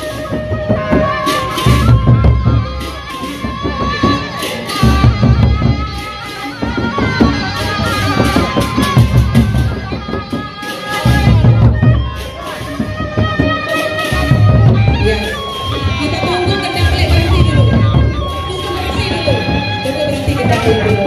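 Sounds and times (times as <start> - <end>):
large drums beaten with sticks: 0.0 - 21.0
reedy melodic line: 0.0 - 21.0.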